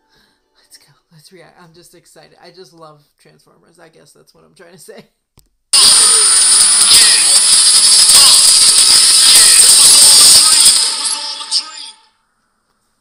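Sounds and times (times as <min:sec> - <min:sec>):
trailer music and sound effects: 0:05.8 - 0:12.0
thin high whine: 0:05.8 - 0:12.8.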